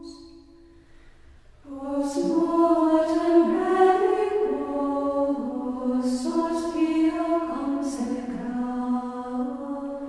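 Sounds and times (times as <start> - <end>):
choir singing held chords: 1.6 - 10.0.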